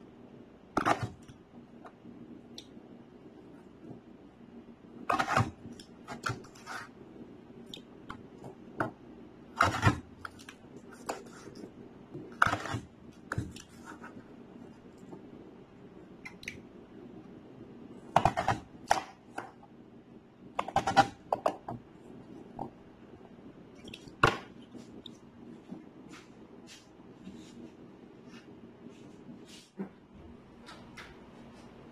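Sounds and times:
faint steady hum: 0:00.0 - 0:31.9.

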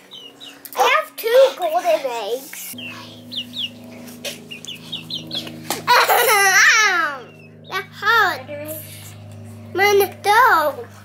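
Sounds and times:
steady low hum: 0:00.0 - 0:11.0
young hen peeping: 0:02.8 - 0:03.8, 0:04.5 - 0:05.8
child laughing loudly: 0:05.7 - 0:07.3.

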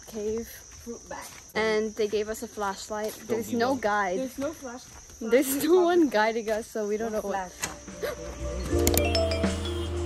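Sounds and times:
insects buzzing: 0:00.0 - 0:10.0.

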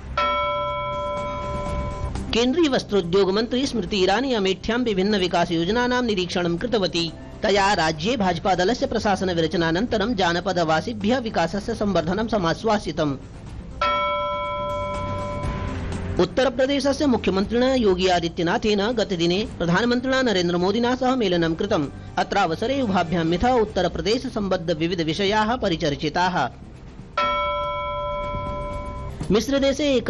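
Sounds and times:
bell-like chime: 0:00.2 - 0:02.3, 0:13.8 - 0:16.0, 0:27.2 - 0:29.4.

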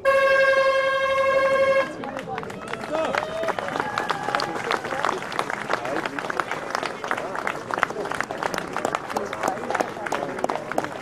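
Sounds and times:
loud horn blast: 0:00.0 - 0:02.0
people talking: 0:01.2 - 0:11.0.

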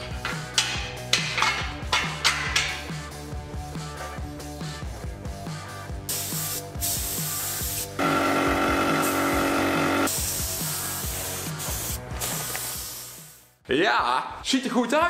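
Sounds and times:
background music with steady beat: 0:00.0 - 0:08.0, 0:09.1 - 0:13.6
paint spray gun hissing: 0:06.1 - 0:13.5.

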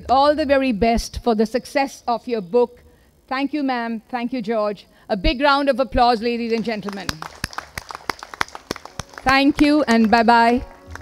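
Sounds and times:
hands clapping: 0:06.5 - 0:11.0.

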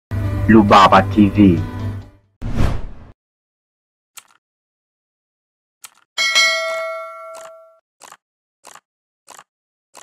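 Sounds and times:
bright bell ding: 0:06.2 - 0:07.8.

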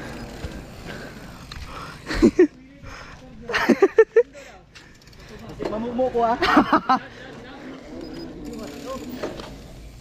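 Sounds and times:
bike tyres on paved road: 0:00.0 - 0:10.0.

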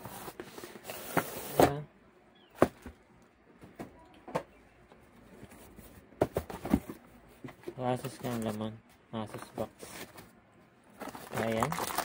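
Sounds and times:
plastic bag rustling: 0:11.0 - 0:12.0.

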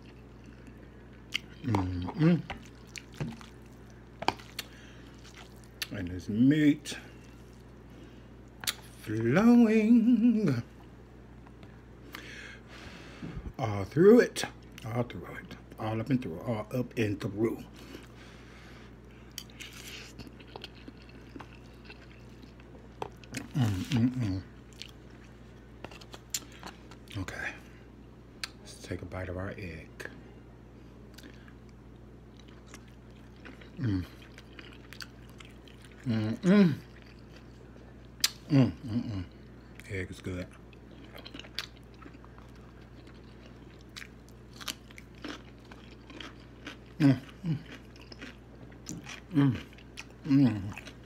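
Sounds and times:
person chewing noodles: 0:00.0 - 0:06.0, 0:17.7 - 0:27.2, 0:31.1 - 0:39.8, 0:40.5 - 0:51.0
faint low hum: 0:00.0 - 0:51.0.

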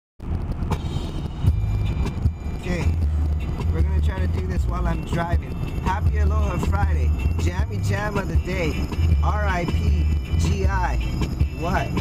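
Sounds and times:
car road and engine rumble: 0:00.2 - 0:12.0.

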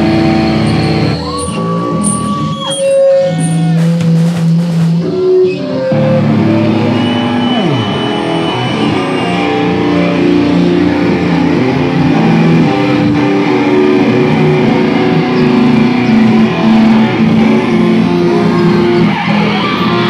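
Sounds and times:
hardcore band playing live: 0:00.0 - 0:20.0
loud electric guitar chords: 0:00.0 - 0:20.0.

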